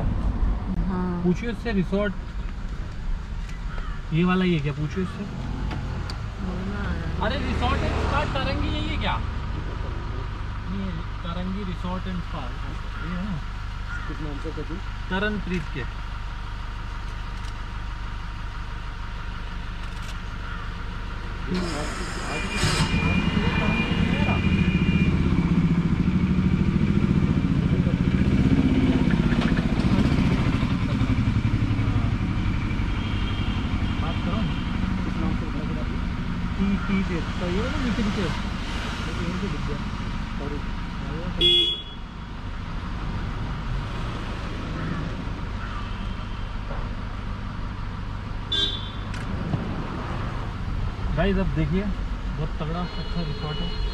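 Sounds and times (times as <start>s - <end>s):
car engine idling: 0.0s - 52.8s
car horn toot: 21.6s - 25.6s, 32.6s - 35.4s, 41.4s - 42.3s, 48.5s - 49.2s, 52.6s - 53.9s.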